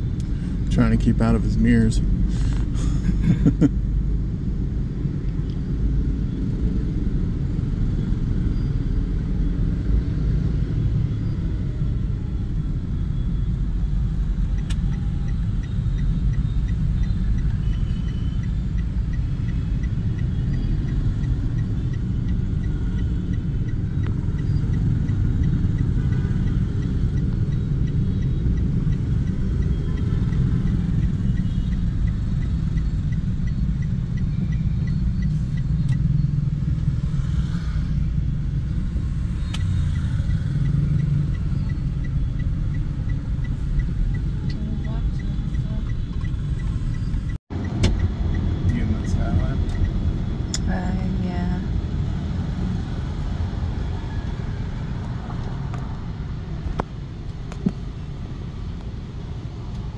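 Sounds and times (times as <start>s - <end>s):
car engine rumble: 0.0s - 59.9s
road noise: 0.0s - 59.9s
faint repeated ticking: 12.5s - 52.0s.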